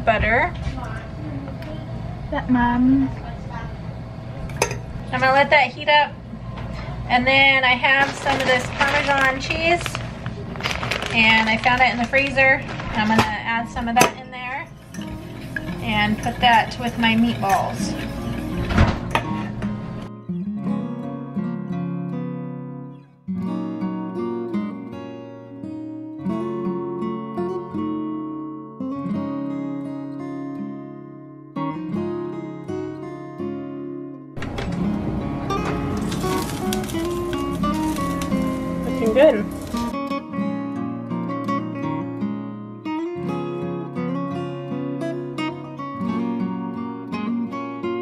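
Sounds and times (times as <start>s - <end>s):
acoustic guitar music: 0.0s - 48.0s
kitchen noise: 4.4s - 5.5s, 6.6s - 20.1s, 34.4s - 40.0s
whisk scraping a steel saucepan: 14.6s - 19.6s
background music: 34.4s - 48.0s.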